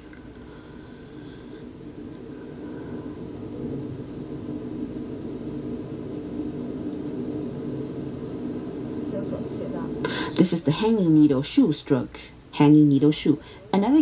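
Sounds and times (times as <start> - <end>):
low hum and rumble: 0.0 - 14.0.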